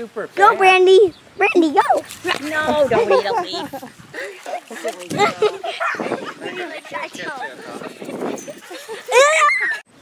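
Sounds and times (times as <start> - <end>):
people laughing: 2.7 - 9.8.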